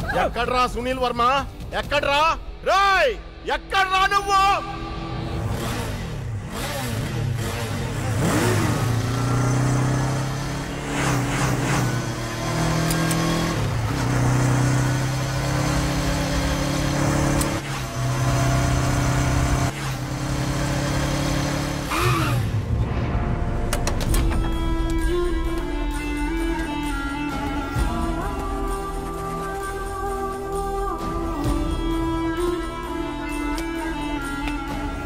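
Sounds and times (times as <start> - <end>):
motorcycle engine revving: 5.0 - 22.7.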